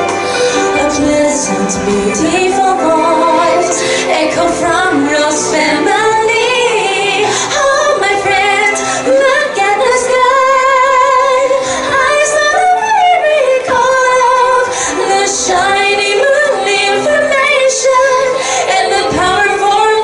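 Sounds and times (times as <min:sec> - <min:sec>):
woman singing with vibrato: 0:00.0 - 0:20.0.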